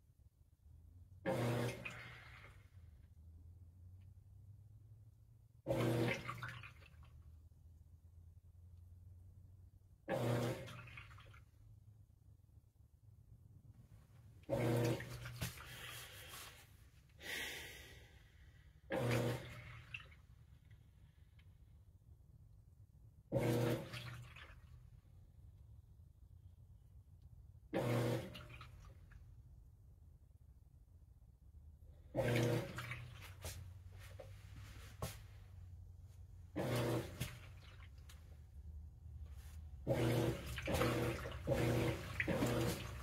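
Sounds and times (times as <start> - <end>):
washing machine motor hum: 1.0 - 11.8, 12.6 - 17.2, 18.8 - 20.7, 22.0 - 26.1, 27.4 - 30.5, 31.1 - 43.0
water sloshing in tub: 1.2 - 2.8, 5.6 - 7.5, 10.0 - 11.9, 13.7 - 17.1, 18.9 - 21.0, 23.2 - 25.2, 27.7 - 29.6, 31.9 - 43.0.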